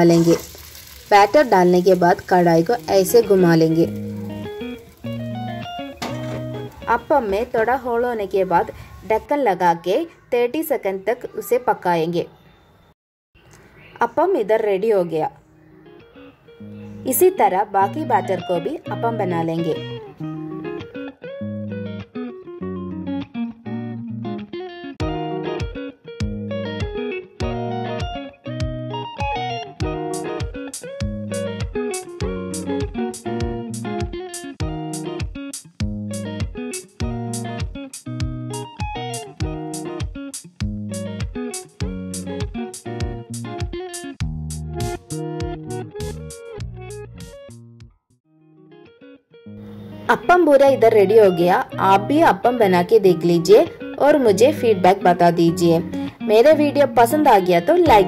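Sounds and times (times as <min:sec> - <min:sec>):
plucked guitar music with beat: 0:02.8 - 0:07.5, 0:15.6 - 0:58.0.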